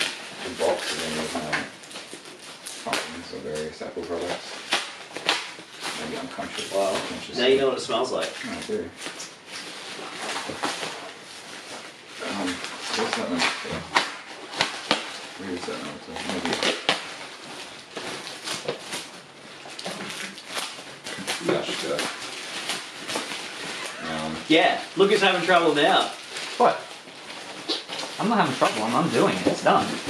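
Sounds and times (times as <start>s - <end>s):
packaging rustling and crinkling: 0.0s - 30.0s.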